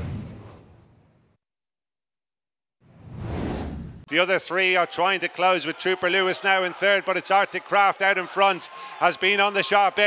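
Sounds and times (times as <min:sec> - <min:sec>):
whoosh sound effect: 0:02.9 - 0:04.1.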